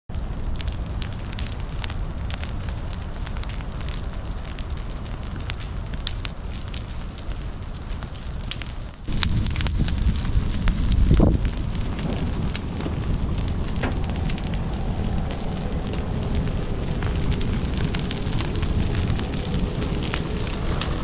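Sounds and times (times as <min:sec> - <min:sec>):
ground fire crackling and popping: 0:00.1 - 0:21.0
low fire rumble: 0:00.1 - 0:21.0.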